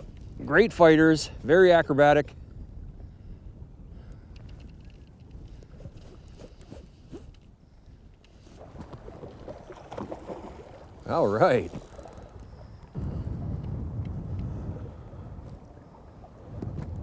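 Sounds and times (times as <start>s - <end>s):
wind rumble on microphone: 0.0s - 17.0s
faint ticks: 4.0s - 8.5s.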